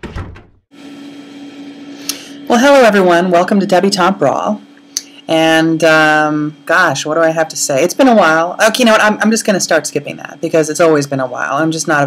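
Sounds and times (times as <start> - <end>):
room tone hum with hiss: 0.8 - 12.0.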